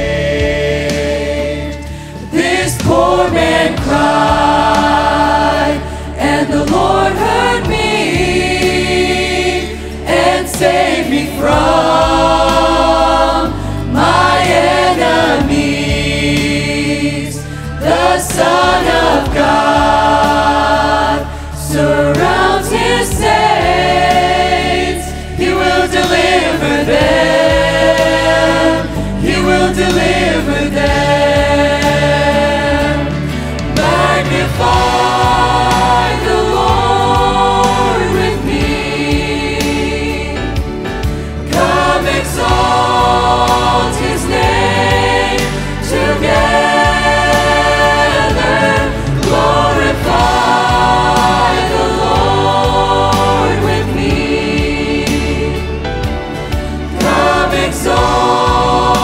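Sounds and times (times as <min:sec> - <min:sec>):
sustained low bass notes: 0:00.0 - 0:59.0
youth choir singing gospel: 0:00.0 - 0:59.0.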